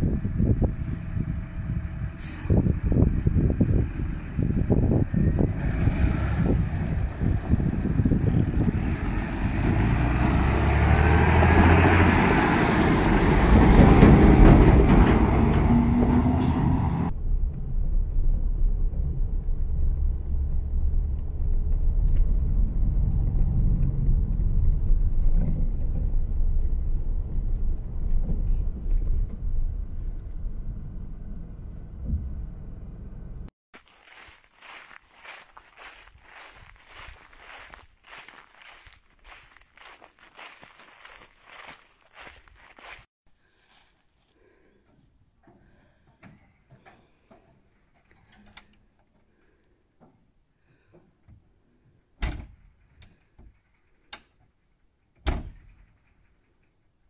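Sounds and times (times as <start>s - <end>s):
tractor engine: 0.0s - 17.2s, 30.8s - 43.1s
car interior driving rumble: 17.3s - 33.5s.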